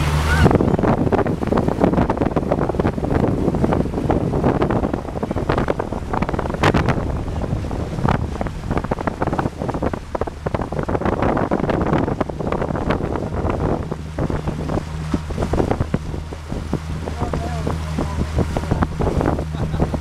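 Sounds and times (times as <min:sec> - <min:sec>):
motorboat engine hum: 0:00.0 - 0:20.0
waves splashing: 0:00.0 - 0:20.0
wind buffeting microphone: 0:00.0 - 0:20.0.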